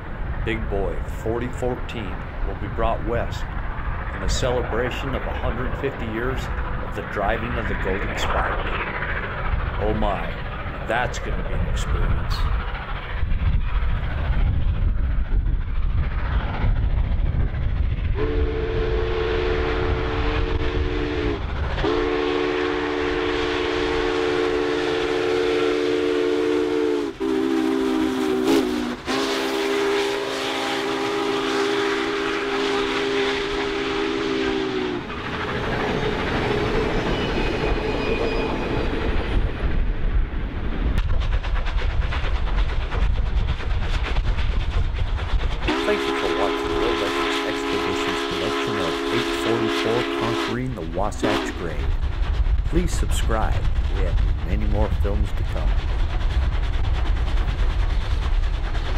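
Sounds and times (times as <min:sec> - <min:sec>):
train running noise: 0:00.0 - 0:58.9
steam locomotive chime whistle: 0:18.2 - 0:35.0, 0:37.0 - 0:39.0, 0:45.7 - 0:50.6, 0:51.2 - 0:51.6.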